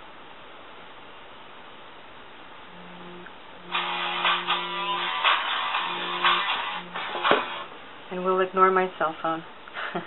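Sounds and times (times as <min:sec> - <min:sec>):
steady low buzz: 0:01.9 - 0:09.6
phone vibrating buzz: 0:02.7 - 0:07.7
guitar-like musical ringtone: 0:03.6 - 0:07.7.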